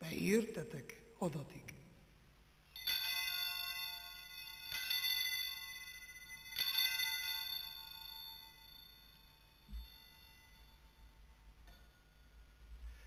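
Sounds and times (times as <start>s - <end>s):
altar bells chiming: 2.7s - 13.0s.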